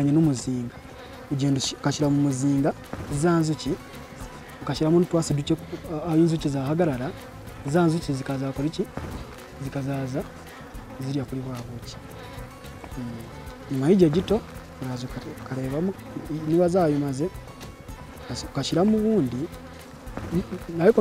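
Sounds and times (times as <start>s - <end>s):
bees buzzing past: 0.0s - 21.0s
steady bee hum: 0.0s - 21.0s.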